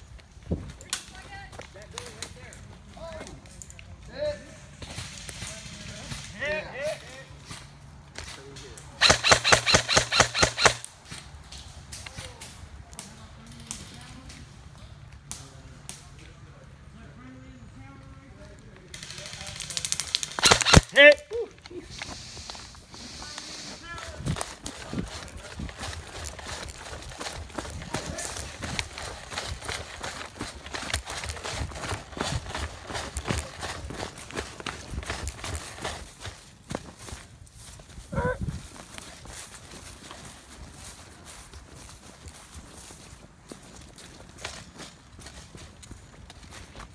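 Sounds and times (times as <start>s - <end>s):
airsoft gun firing bursts: 9.0s - 10.9s, 20.2s - 21.1s
running footsteps through leaves: 21.7s - 46.9s.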